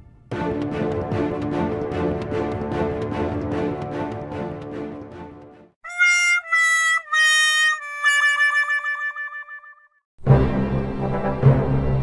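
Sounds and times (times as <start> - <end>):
dramatic music with deep drum beat: 0.3 - 5.2.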